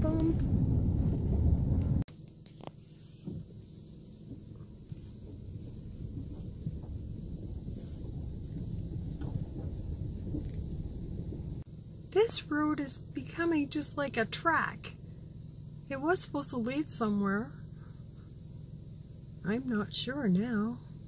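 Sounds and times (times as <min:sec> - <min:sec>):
vehicle rumbling on gravel: 0:00.0 - 0:16.8.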